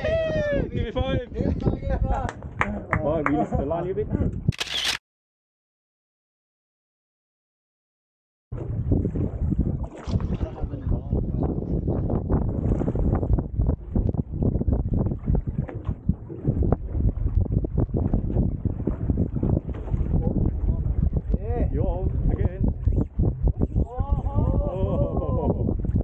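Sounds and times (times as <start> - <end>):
wind buffeting microphone: 0.0 - 4.6, 8.5 - 26.0.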